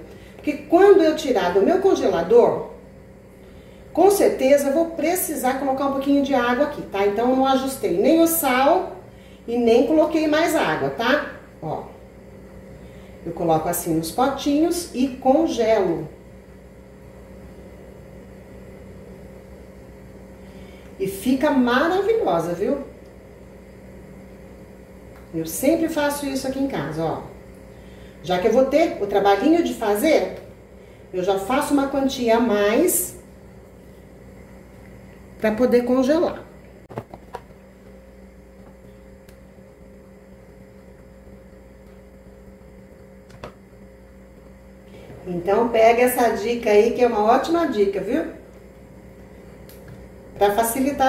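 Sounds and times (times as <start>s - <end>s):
low mechanical hum: 0.0s - 51.0s.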